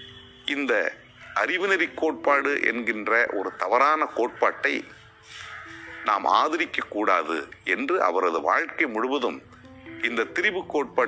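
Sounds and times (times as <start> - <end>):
faint background music: 0.0 - 11.0
man speaking: 5.9 - 9.4, 10.0 - 11.0.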